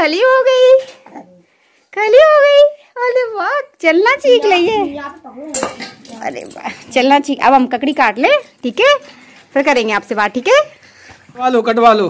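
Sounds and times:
steel utensils clattering: 0:05.5 - 0:09.1.

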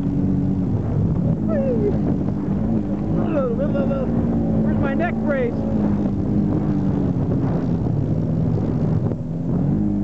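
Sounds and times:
off-road vehicle engine revving: 0:00.0 - 0:10.0.

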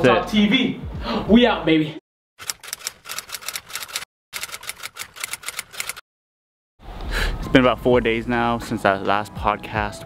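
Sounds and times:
rapid typewriter-like clicking: 0:02.4 - 0:06.0.

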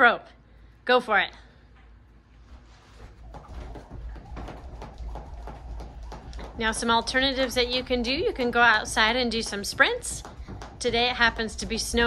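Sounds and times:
jump rope thuds on carpet: 0:03.0 - 0:12.0.

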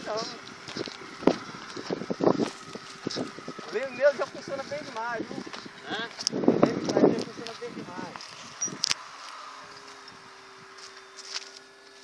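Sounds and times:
wind buffeting microphone: 0:00.0 - 0:09.0
distant model plane motor whine: 0:00.0 - 0:12.0.

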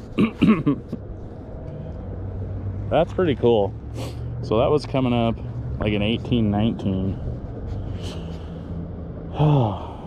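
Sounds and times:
low engine hum: 0:00.0 - 0:10.0
man clearing throat: 0:00.1 - 0:01.0
man speaking: 0:02.9 - 0:03.8, 0:04.4 - 0:07.2.

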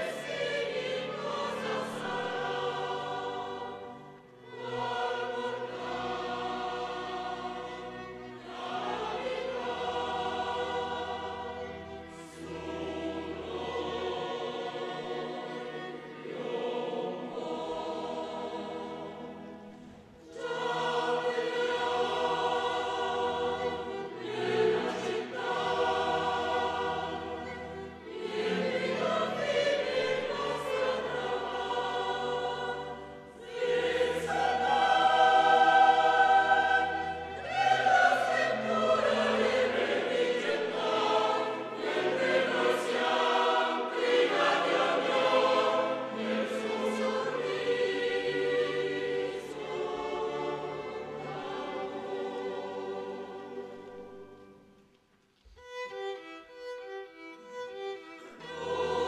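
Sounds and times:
choir singing: 0:00.0 - 0:54.8, 0:55.7 - 0:59.0
string orchestra: 0:00.0 - 0:59.0.

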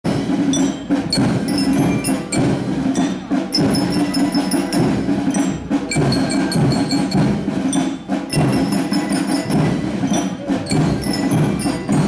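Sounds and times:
drums beating: 0:00.0 - 0:12.0
marching band playing: 0:00.0 - 0:12.0
ringing bell notes: 0:00.2 - 0:12.0.

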